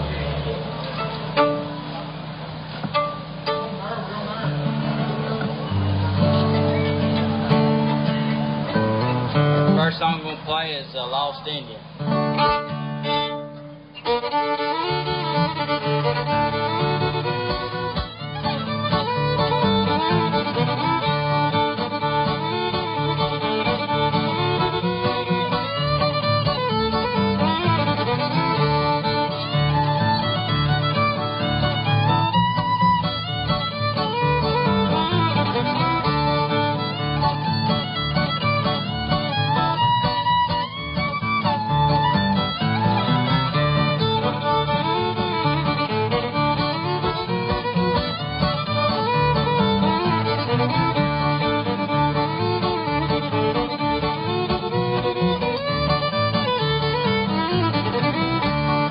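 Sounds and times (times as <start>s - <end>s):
guitar bass rhythm: 0.0s - 58.9s
lively fiddle tune: 0.0s - 58.9s.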